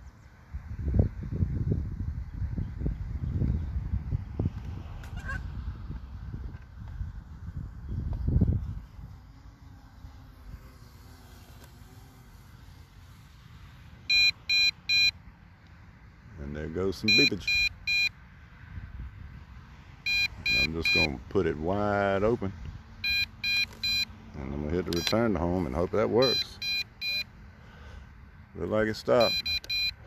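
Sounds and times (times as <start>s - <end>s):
wind buffeting microphone: 0.5s - 9.4s
short electronic beeps: 14.1s - 15.2s, 17.1s - 18.2s, 20.1s - 21.1s, 23.0s - 24.1s, 24.9s - 25.2s, 26.2s - 27.3s, 29.2s - 30.0s.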